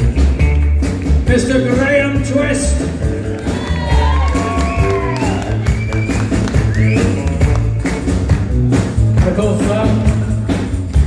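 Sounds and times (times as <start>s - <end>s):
bass and drums: 0.0s - 11.0s.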